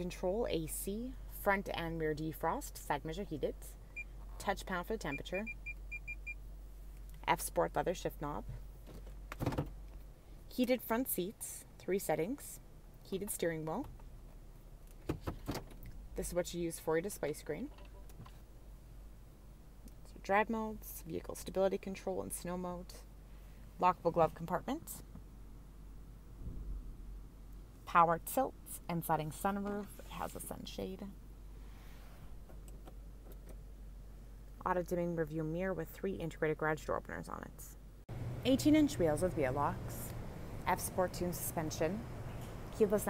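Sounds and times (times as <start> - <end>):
low cabin hum: 37.9 - 43.0.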